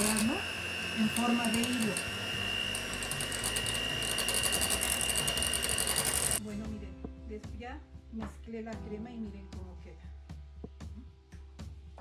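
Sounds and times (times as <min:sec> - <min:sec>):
electric hand mixer whipping cream: 0:00.0 - 0:06.4.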